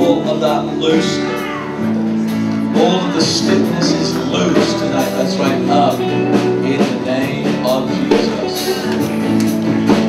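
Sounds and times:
guitar: 0.0s - 10.0s
steady drum beat: 0.0s - 10.0s
worship band music: 0.0s - 10.0s.

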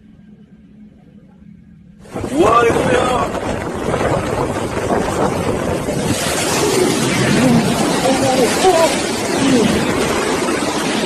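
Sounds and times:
surging sea water: 0.0s - 11.0s
wind buffeting microphone: 2.0s - 11.0s.

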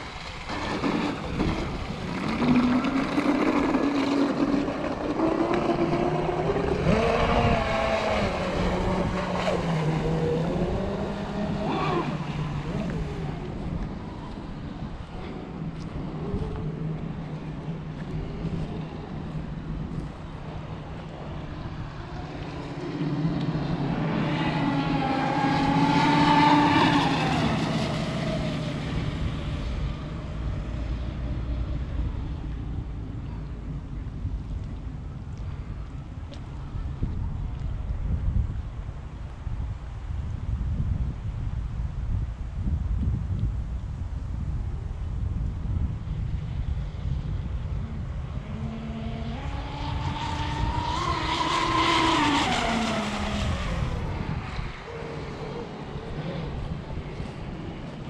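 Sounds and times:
electric speedboat motor whine: 0.0s - 33.4s, 46.1s - 58.0s.

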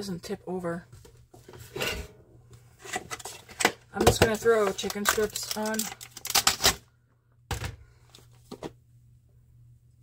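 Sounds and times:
plastic container crackling: 4.1s - 6.8s.

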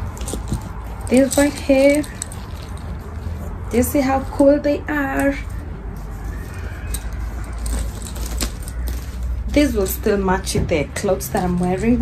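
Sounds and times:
metal chain clinking: 0.0s - 4.4s, 6.6s - 10.2s.

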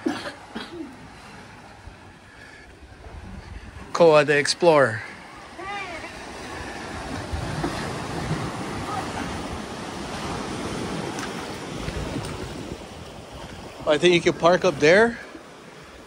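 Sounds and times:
ocean surf on beach: 0.0s - 16.0s
wind buffeting microphone: 2.8s - 4.0s, 5.2s - 15.1s.

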